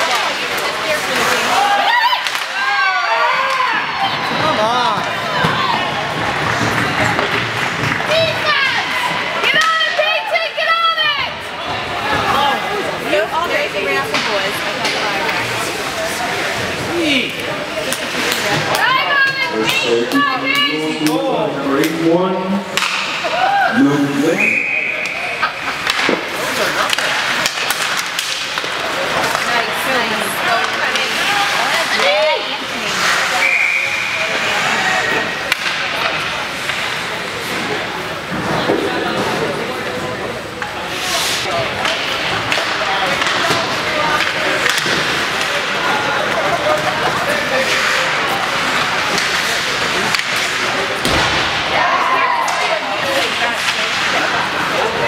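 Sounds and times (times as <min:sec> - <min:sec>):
sticks and puck clacking: 0:00.0 - 0:10.7, 0:13.1 - 0:22.0, 0:22.7 - 0:23.6, 0:25.0 - 0:55.0
skates scraping: 0:00.0 - 0:21.1, 0:22.8 - 0:55.0
spectators talking: 0:00.0 - 0:55.0
referee's whistle: 0:24.4 - 0:25.1, 0:33.4 - 0:34.2.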